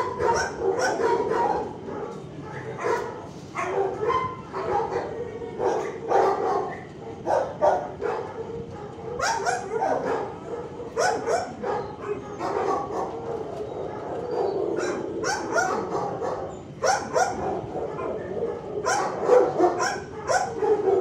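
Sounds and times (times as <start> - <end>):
dogs barking: 0.0 - 21.0.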